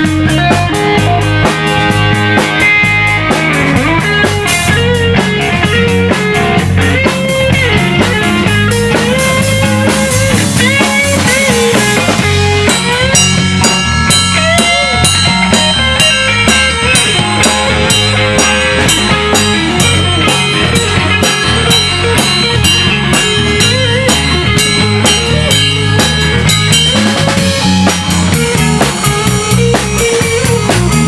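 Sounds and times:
drum kit: 0.0s - 31.0s
electric bass: 0.0s - 31.0s
lead electric guitar bending notes: 0.0s - 31.0s.

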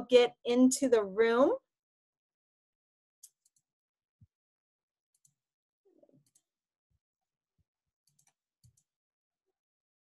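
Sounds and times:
computer mouse clicks: 3.2s - 3.7s, 5.1s - 5.4s, 6.0s - 6.5s, 8.0s - 8.9s.

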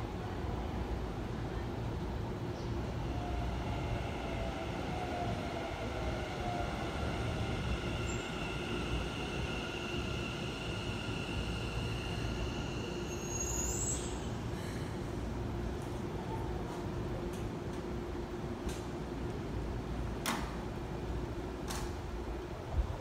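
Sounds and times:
high squeal of wheels or brakes: 7.9s - 14.8s.

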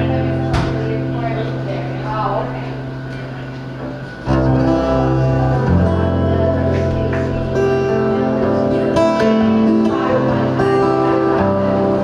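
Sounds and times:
acoustic guitar chord strummed: 0.0s - 12.0s.

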